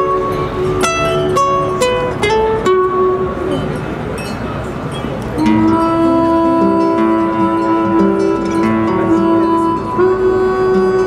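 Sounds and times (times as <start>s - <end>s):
classical guitar: 0.0s - 11.0s
bowed cello: 5.3s - 11.0s
person singing: 5.4s - 11.0s.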